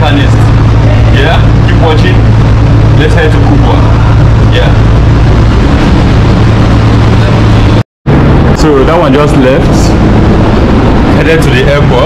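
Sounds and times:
low hum with pitched drone: 0:00.0 - 0:12.0.

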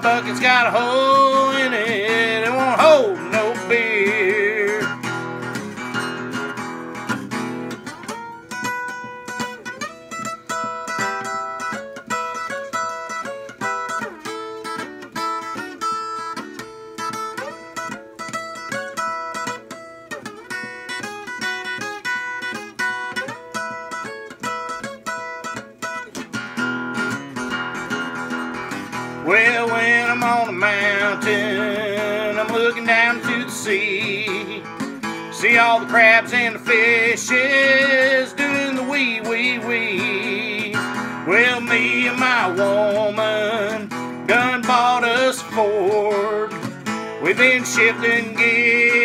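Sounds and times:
acoustic guitar lead line: 0:00.0 - 0:49.0
guitar strumming: 0:00.0 - 0:49.0.

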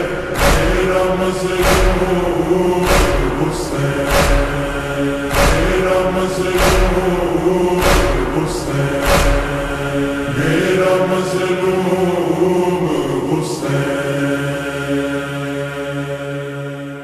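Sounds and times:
sustained vocal drone: 0:00.0 - 0:17.0
voice chanting a lament: 0:00.0 - 0:17.0.

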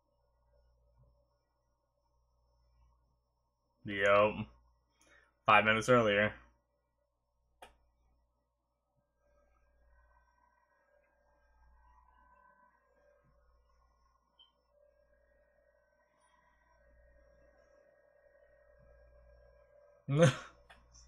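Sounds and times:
faint low hum: 0:00.0 - 0:21.0
faint steady tones: 0:00.0 - 0:21.0.

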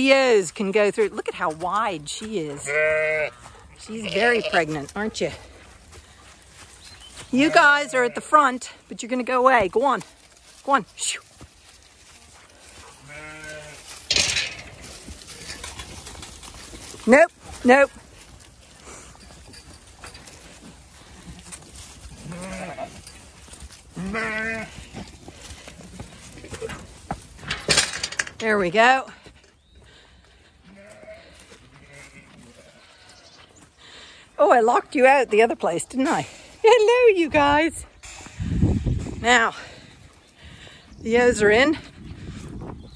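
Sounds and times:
sheep bleating: 0:02.5 - 0:04.9, 0:07.4 - 0:08.6, 0:13.0 - 0:13.9, 0:22.2 - 0:23.1, 0:23.9 - 0:24.8, 0:30.6 - 0:33.4.

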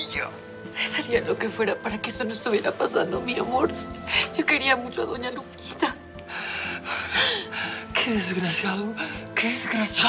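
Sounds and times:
soft background music: 0:00.0 - 0:10.0
woman crying and sobbing: 0:05.6 - 0:08.3.

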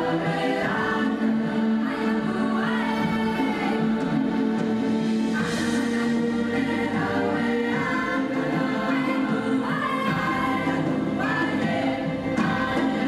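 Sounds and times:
orchestral accompaniment: 0:00.0 - 0:13.0
women's choir singing: 0:00.0 - 0:13.0.

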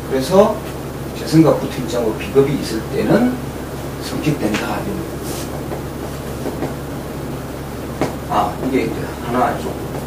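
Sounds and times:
low electrical hum: 0:00.0 - 0:10.0
room noise hiss: 0:00.0 - 0:10.0.

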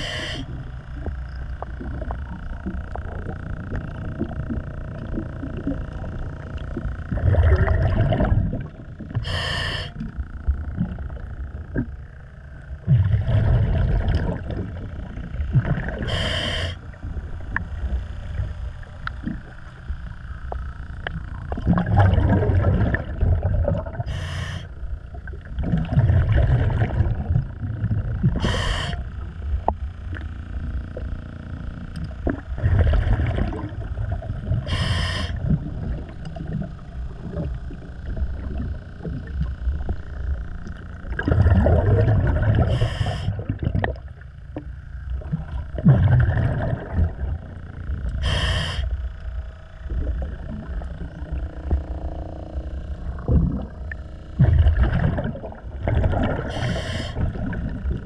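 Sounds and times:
regulator inhalation hiss: 0:00.0 - 0:00.6, 0:09.2 - 0:10.0, 0:16.0 - 0:16.8, 0:24.0 - 0:24.7, 0:28.4 - 0:29.1, 0:34.7 - 0:35.4, 0:42.7 - 0:43.4, 0:48.2 - 0:49.0, 0:56.5 - 0:57.3
exhaled bubbles: 0:01.0 - 0:12.0, 0:12.8 - 0:18.5, 0:21.0 - 0:30.2, 0:32.0 - 0:48.8, 0:49.8 - 0:58.0.

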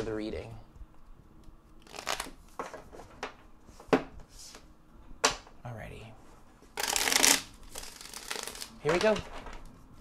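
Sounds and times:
cards being shuffled: 0:01.7 - 0:02.9, 0:06.6 - 0:09.8.

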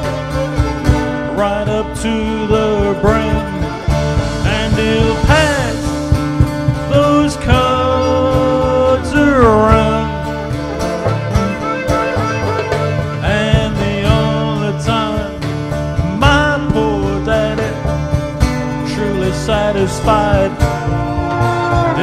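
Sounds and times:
bass and drums accompaniment: 0:00.0 - 0:22.0
fiddle with sliding notes: 0:00.0 - 0:22.0.

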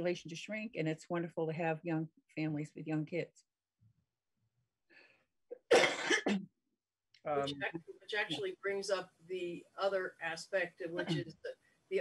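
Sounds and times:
faint breath: 0:04.9 - 0:05.2
person sneezing: 0:11.0 - 0:11.3.

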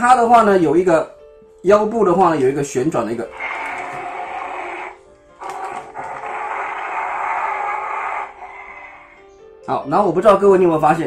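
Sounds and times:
toy electronic sound effect: 0:03.3 - 0:09.2.

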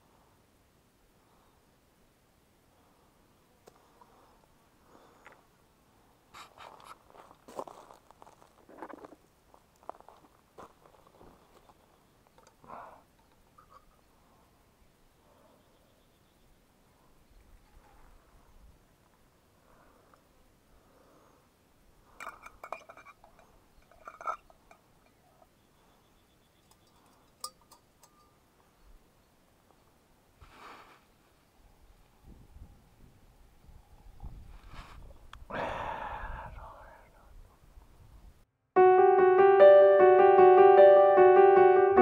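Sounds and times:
metal cookware clinking: 0:22.2 - 0:25.2, 0:26.6 - 0:28.4.

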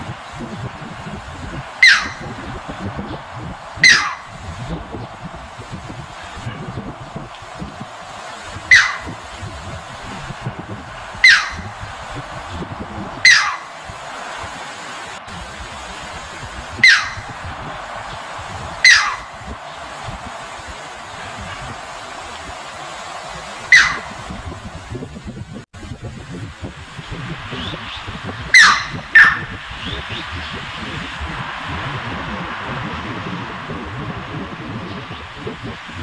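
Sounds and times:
background hiss: 0:00.0 - 0:36.0
heron calls: 0:01.8 - 0:02.4, 0:03.8 - 0:04.4, 0:08.6 - 0:09.3, 0:11.2 - 0:11.7, 0:13.2 - 0:13.8, 0:16.8 - 0:17.4, 0:18.8 - 0:19.3, 0:23.6 - 0:24.3, 0:28.5 - 0:29.6.

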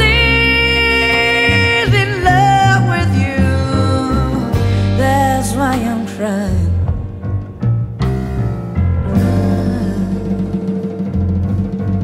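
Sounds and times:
woman singing blues: 0:00.0 - 0:07.0, 0:09.2 - 0:10.5
bass notes: 0:00.0 - 0:12.0
blues band playing: 0:00.0 - 0:12.0.

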